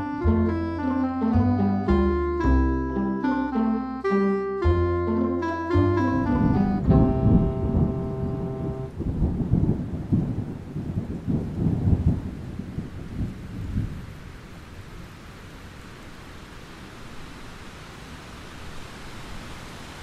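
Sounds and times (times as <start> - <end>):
rain falling: 5.8 - 20.0
thunder rumbling: 6.0 - 14.2.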